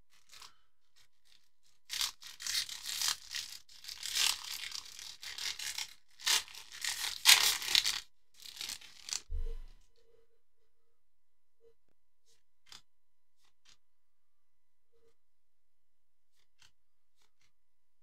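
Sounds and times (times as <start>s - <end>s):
plastic wrapper crinkling and tearing: 1.2s - 9.3s.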